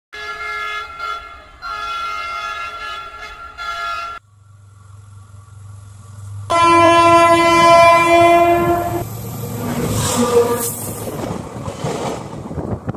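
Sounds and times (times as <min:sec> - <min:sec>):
locomotive horn blasts: 0:00.2 - 0:04.2, 0:06.3 - 0:09.1, 0:09.8 - 0:10.8
train rumbling past: 0:00.2 - 0:12.9.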